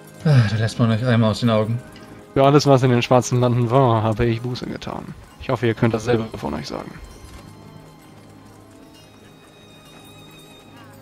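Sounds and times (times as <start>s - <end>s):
quiet background music: 0.0s - 11.0s
horse hooves clip-clopping: 1.2s - 11.0s.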